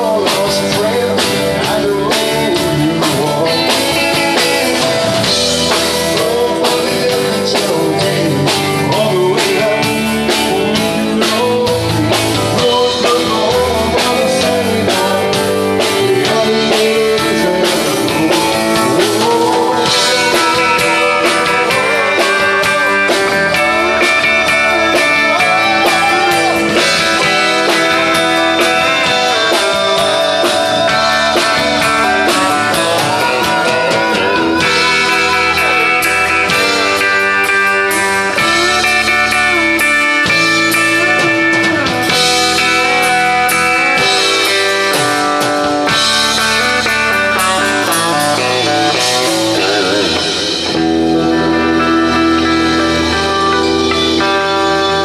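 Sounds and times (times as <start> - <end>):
rock band playing: 0.0 - 55.0.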